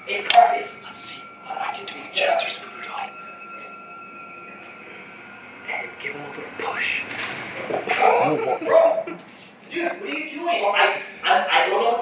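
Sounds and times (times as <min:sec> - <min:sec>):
steady high-pitched tone: 0:00.0 - 0:08.7.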